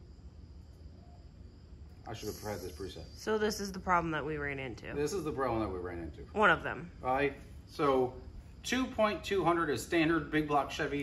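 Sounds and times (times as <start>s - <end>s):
low steady hum: 0.0s - 11.0s
high-pitched whine: 0.8s - 11.0s.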